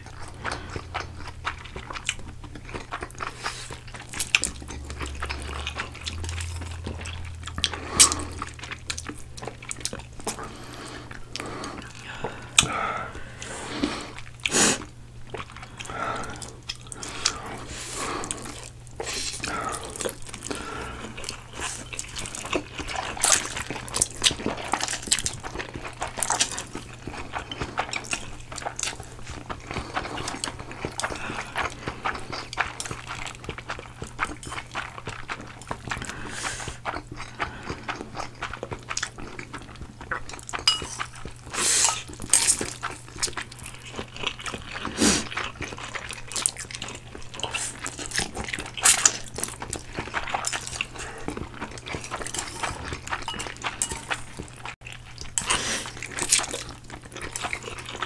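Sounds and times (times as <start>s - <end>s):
loud slurping and chewing noodles: 0.0s - 58.0s
chopsticks clinking ceramic bowls: 40.6s - 41.2s, 51.9s - 54.5s.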